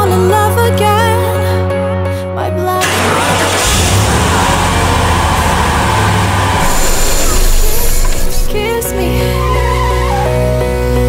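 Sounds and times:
car engine rumble: 2.8s - 8.8s
road noise: 3.0s - 8.7s.

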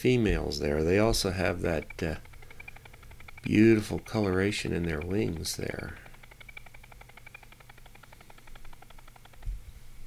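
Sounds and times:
rapid stuttering audio blips: 0.2s - 9.6s.

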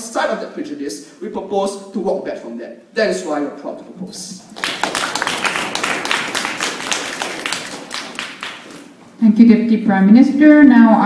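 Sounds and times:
small audience applauding: 4.4s - 9.0s.

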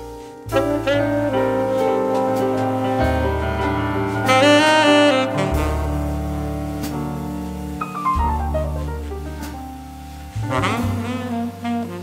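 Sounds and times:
low held bass note: 0.5s - 11.4s
piano quick descending run: 0.5s - 12.0s.

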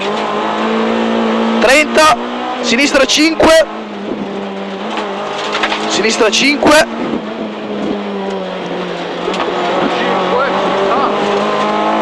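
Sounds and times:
car engine running at speed: 0.0s - 12.0s.

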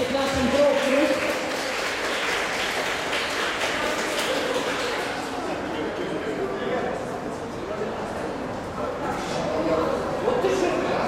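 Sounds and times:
applause: 0.0s - 5.8s
crowd chatter: 0.0s - 11.0s.

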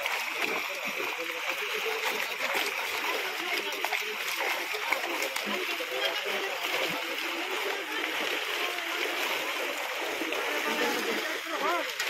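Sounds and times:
fish splashing in water: 0.0s - 12.0s
voices: 0.0s - 12.0s.

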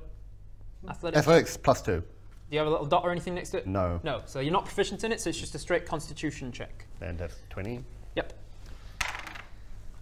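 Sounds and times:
dice clattering on wooden table: 9.0s - 9.6s.

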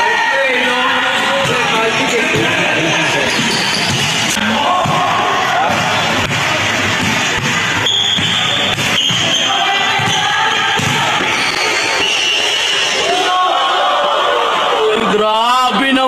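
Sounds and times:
basketball bouncing: 3.3s - 11.6s.

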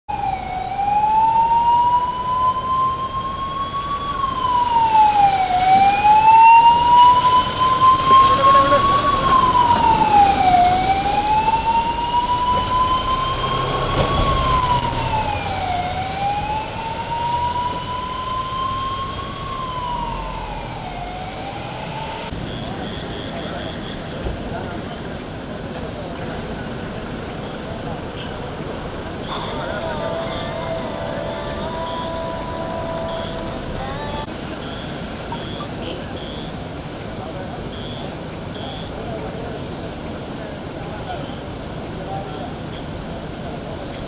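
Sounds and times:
fire engine siren wailing: 0.1s - 23.9s, 29.2s - 34.8s.

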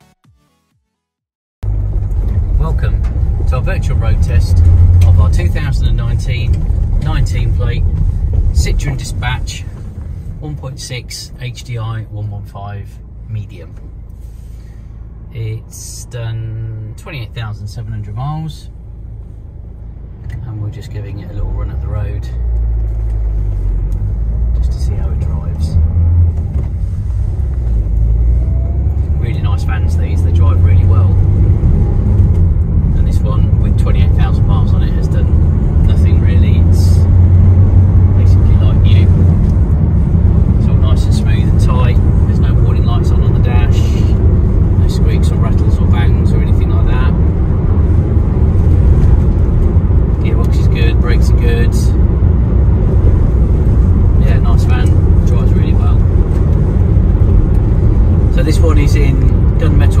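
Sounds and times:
van engine and road rumble: 1.6s - 60.0s.

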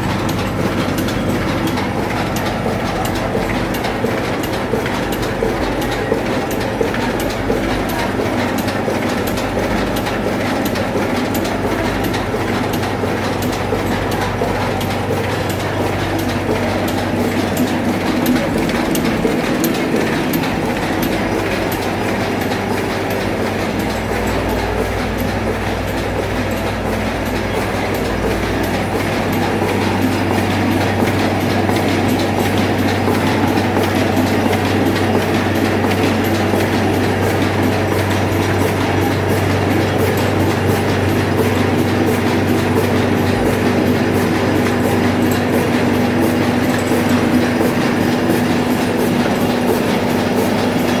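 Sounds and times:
printing press clatter: 0.0s - 51.0s.

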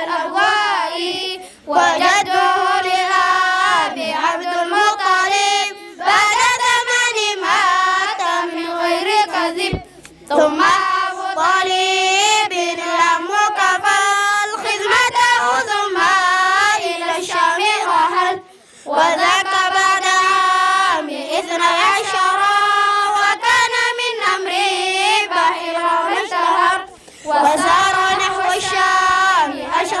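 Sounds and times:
children chanting in unison: 0.0s - 30.0s.

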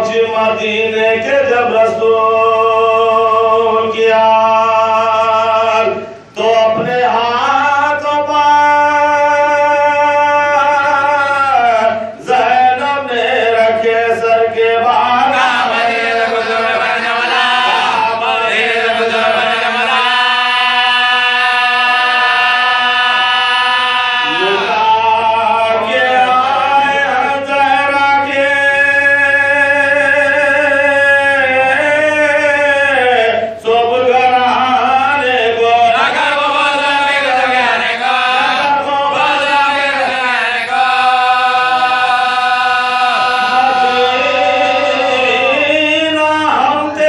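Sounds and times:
men chanting an elegy: 2.2s - 33.6s, 34.5s - 47.0s.

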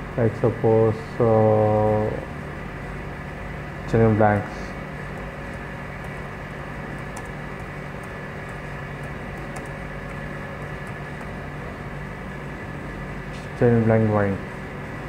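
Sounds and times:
electrical fan hum: 0.0s - 15.0s
keyboard typing clicks: 5.2s - 6.3s, 6.9s - 11.4s.

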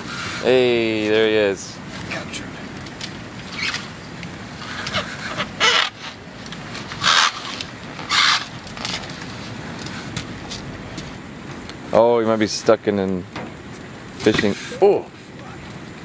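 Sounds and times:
outdoor background noise: 0.0s - 16.0s.

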